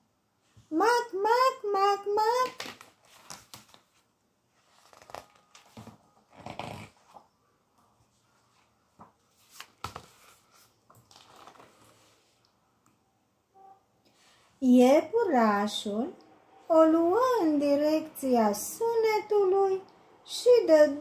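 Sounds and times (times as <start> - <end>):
paper rustling: 2.5 - 6.0, 8.1 - 12.4.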